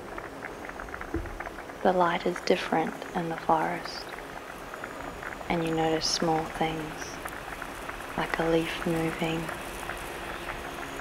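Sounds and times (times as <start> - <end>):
crackling ticks: 0.0 - 11.0
woman narrating: 1.8 - 4.1, 5.5 - 7.2, 8.2 - 9.6.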